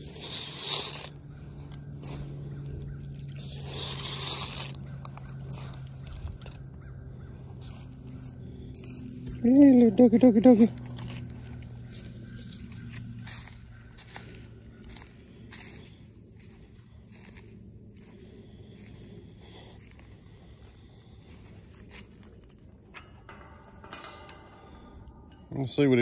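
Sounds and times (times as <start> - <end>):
footsteps crunching on dry leaves: 0.0 - 9.5, 10.5 - 22.5.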